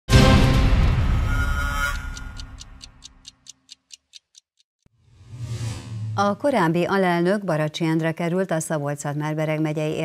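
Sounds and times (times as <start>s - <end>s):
theme music: 0.1s - 3.2s
clock-like ticking: 1.8s - 4.7s.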